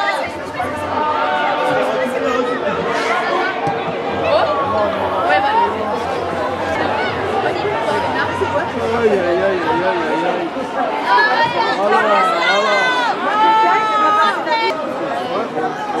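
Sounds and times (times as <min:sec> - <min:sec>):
background chatter: 0:00.0 - 0:16.0.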